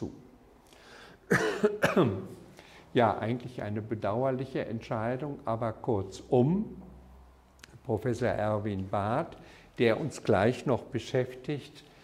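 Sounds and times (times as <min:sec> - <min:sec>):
man clearing throat: 0:01.3 - 0:02.4
man coughing: 0:01.3 - 0:02.4.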